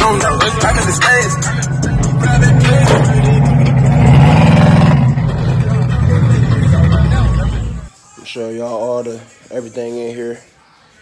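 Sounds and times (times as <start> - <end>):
car engine revving: 0.0 - 7.9
music playing: 0.0 - 11.0.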